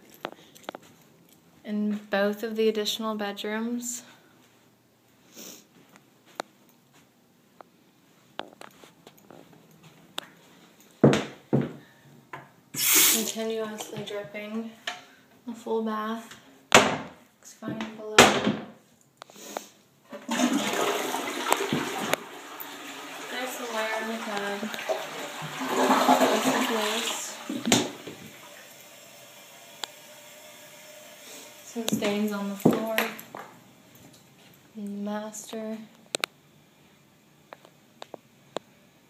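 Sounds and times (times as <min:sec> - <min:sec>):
toilet tank refilling hiss: 0:12.8 - 0:13.4, 0:20.1 - 0:31.8
faucet water running into drain: 0:20.1 - 0:32.2.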